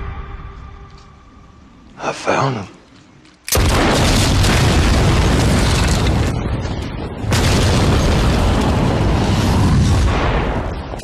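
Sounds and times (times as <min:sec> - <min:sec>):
large explosion boom: 0:03.6 - 0:11.0.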